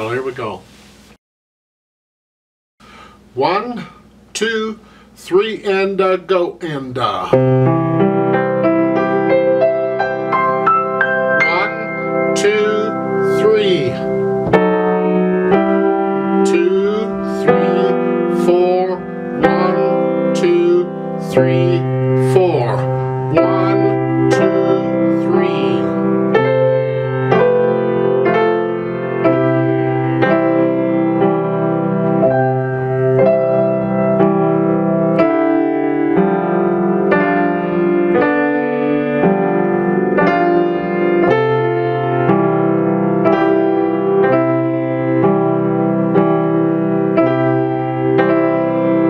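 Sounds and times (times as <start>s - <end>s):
grand piano playing slow waltz: 7.3s - 49.0s.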